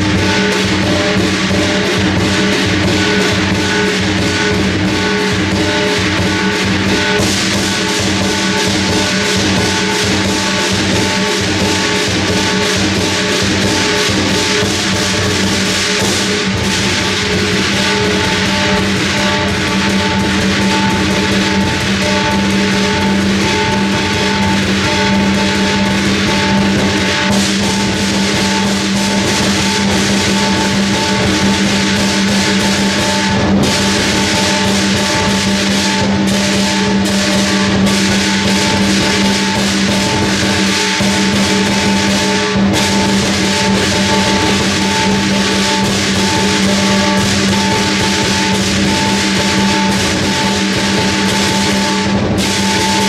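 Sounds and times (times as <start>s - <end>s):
clashing cymbals: 0.0s - 53.0s
large drum beaten fast: 0.0s - 53.0s
ringing gong: 0.0s - 53.0s.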